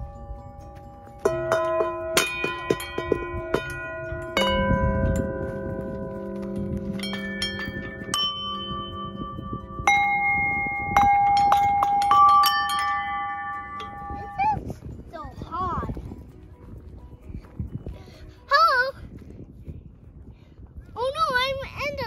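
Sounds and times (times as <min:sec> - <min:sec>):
metal dome bells struck: 0:00.0 - 0:15.5.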